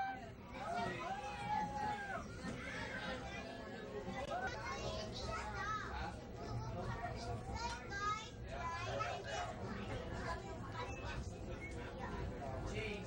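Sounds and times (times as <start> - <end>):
children's voices and chatter: 0.0 - 13.0.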